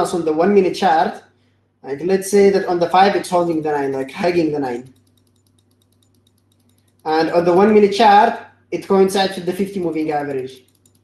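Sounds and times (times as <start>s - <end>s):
low steady hum: 0.0s - 11.0s
faint evenly spaced ticks: 2.8s - 8.0s, 9.2s - 11.0s.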